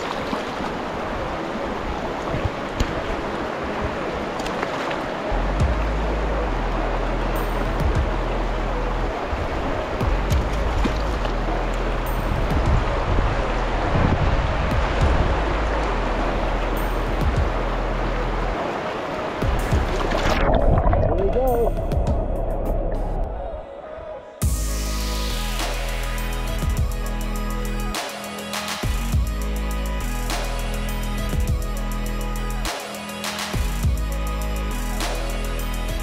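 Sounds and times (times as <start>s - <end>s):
river rushing over rocks: 0.0s - 22.0s
background music: 5.3s - 36.0s.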